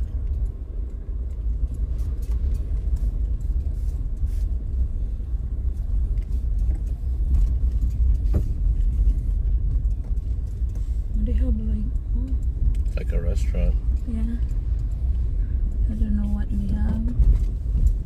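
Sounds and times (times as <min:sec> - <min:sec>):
car driving on rough road: 0:00.0 - 0:18.0
small clicks and rattles: 0:05.6 - 0:18.0.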